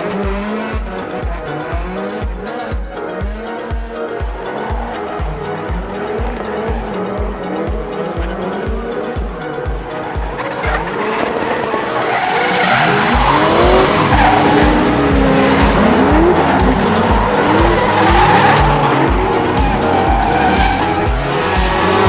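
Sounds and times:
background music with bass beat: 0:00.0 - 0:22.0
car engines revving: 0:00.0 - 0:22.0.

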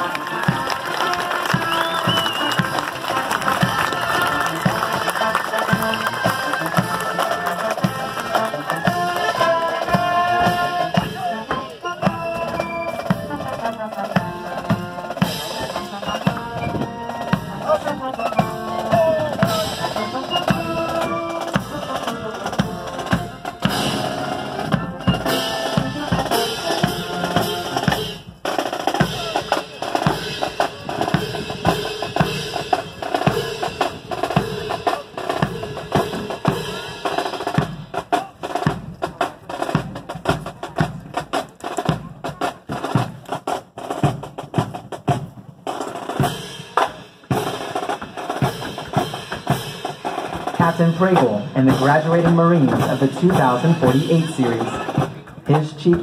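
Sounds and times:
brass marching band: 0:00.0 - 0:56.0
snare and bass drums: 0:00.0 - 0:56.0.

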